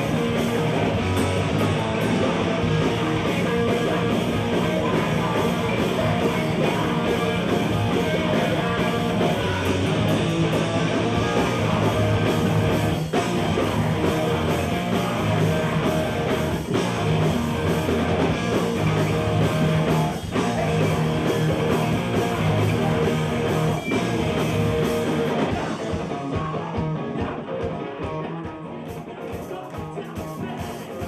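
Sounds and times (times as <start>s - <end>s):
noise rock band playing: 0.0s - 31.0s.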